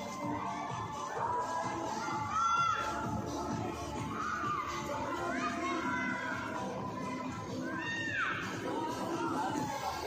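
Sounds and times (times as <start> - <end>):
children shouting: 0.0 - 10.0
crowd chatter: 0.0 - 10.0
music playing: 0.0 - 10.0.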